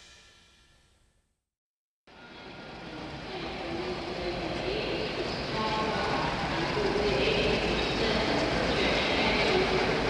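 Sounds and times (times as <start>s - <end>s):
train rumbling rush: 2.1s - 10.0s.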